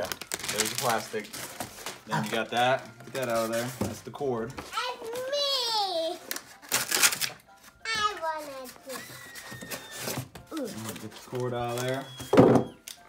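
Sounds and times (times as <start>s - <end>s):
plastic packaging rustle: 0.0s - 4.2s, 4.8s - 13.0s.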